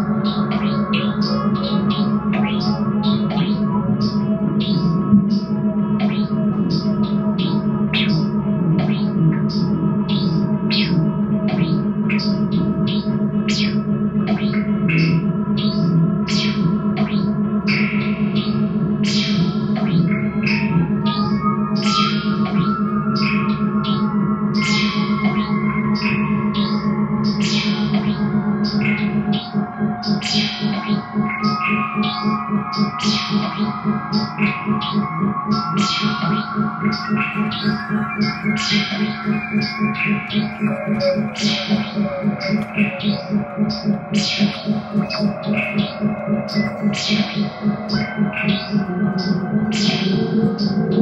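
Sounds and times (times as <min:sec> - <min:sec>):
sustained low drone: 0:00.0 - 0:51.0.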